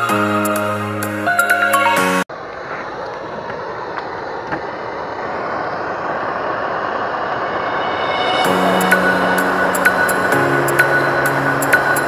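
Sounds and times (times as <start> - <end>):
music: 0.0 - 2.3, 8.3 - 12.0
blowtorch hissing: 2.3 - 12.0.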